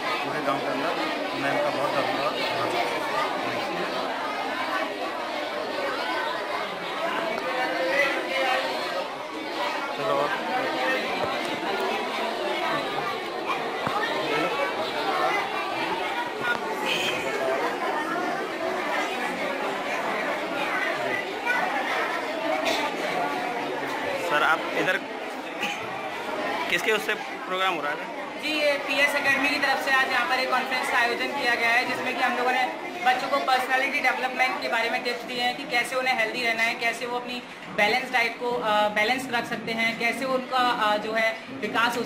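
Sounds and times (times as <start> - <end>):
indistinct chatter of people: 0.0 - 42.0.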